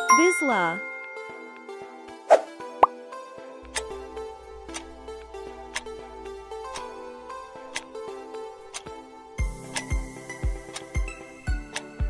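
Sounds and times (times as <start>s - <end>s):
background music sustained notes: 0.0s - 12.0s
countdown timer tick: 9.4s - 11.9s.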